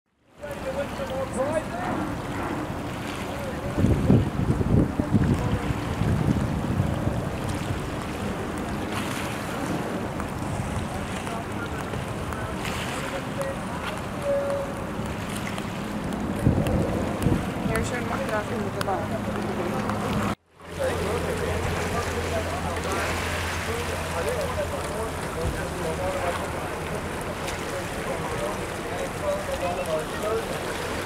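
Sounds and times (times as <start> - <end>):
ship low hum: 0.1 - 31.0
water washing: 0.4 - 31.0
wind buffeting microphone: 0.6 - 20.4.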